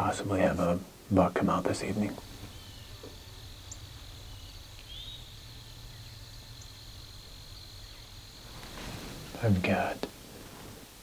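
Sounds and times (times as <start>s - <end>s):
high insect drone: 0.0s - 11.0s
faint bird chirps: 1.7s - 10.1s.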